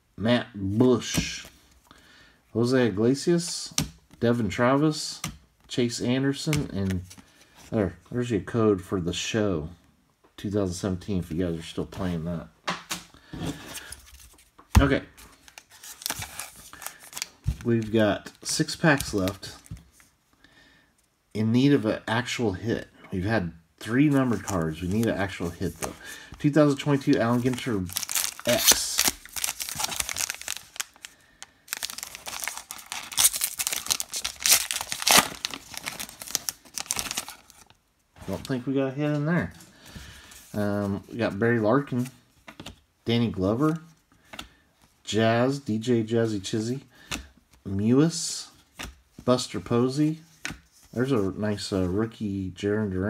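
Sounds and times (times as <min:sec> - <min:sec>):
cards and foil wrapper rustling: 0:15.3 - 0:18.0, 0:24.2 - 0:38.5.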